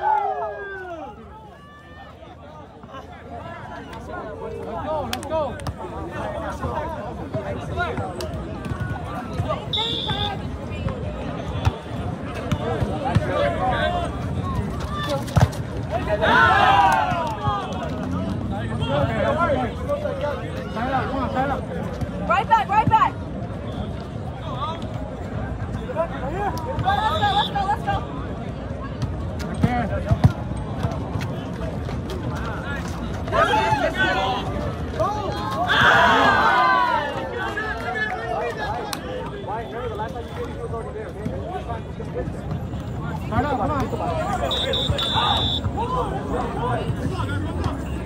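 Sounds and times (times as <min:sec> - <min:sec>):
players shouting: 0:00.0 - 0:21.6, 0:33.3 - 0:40.1, 0:43.3 - 0:48.0
spectators talking and calling out: 0:00.0 - 0:48.0.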